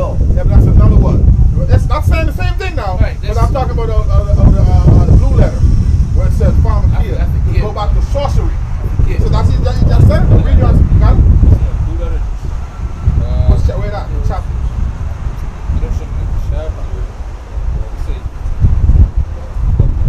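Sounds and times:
man talking: 0.0 - 12.5, 13.1 - 14.6, 15.4 - 18.4, 19.2 - 20.0
heavy low rumble: 0.0 - 20.0.

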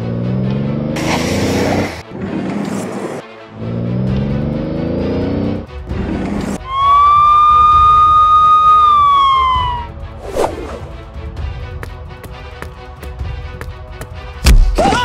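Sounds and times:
car engine revving: 0.0 - 6.6
police siren: 6.6 - 10.1.

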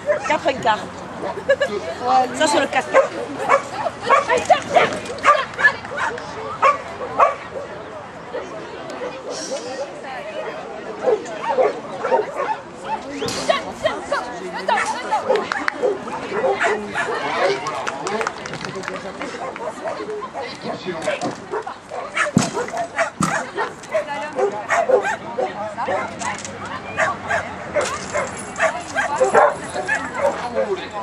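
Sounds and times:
voices: 0.0 - 31.0
dog barking sharply: 22.2 - 25.2.

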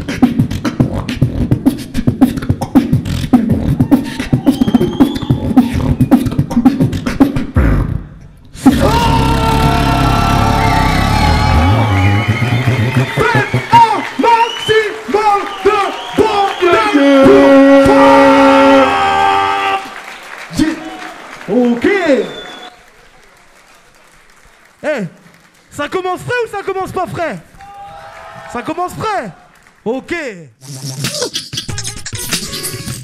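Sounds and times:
beatboxing into microphone: 0.0 - 18.9, 30.5 - 33.0.

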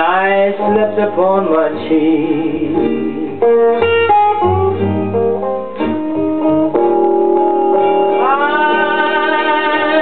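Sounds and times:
blues guitar picking: 0.0 - 10.0.

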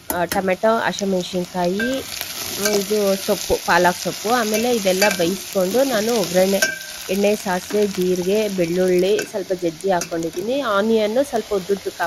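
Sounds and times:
onions sizzling in oil: 0.0 - 12.0.

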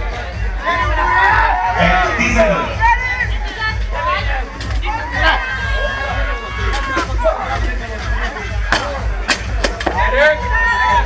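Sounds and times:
background music with beat: 0.0 - 11.0
crowd chatter: 0.0 - 11.0.

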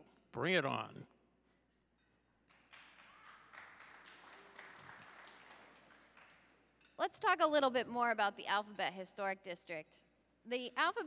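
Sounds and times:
audience applause: 2.5 - 6.6.

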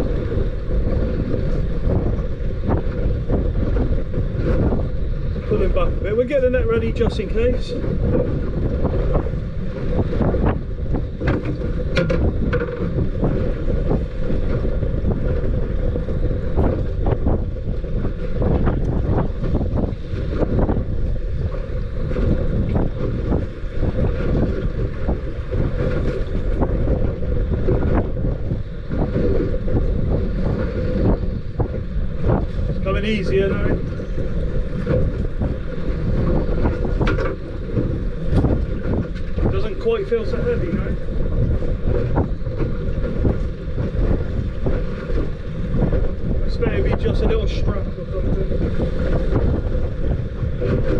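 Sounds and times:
knocks and slaps on boat: 0.0 - 5.8, 7.8 - 50.9
strong wind buffeting microphone: 0.0 - 50.9.

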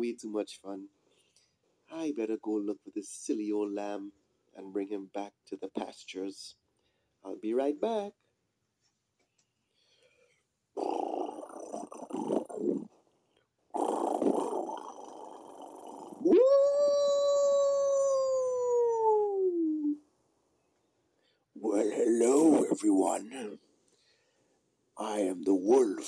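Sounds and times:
wolf howling: 16.2 - 20.0.

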